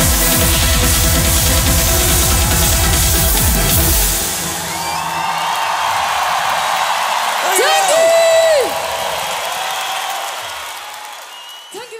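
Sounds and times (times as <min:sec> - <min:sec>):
crowd cheering and applauding: 0:00.0 - 0:11.9.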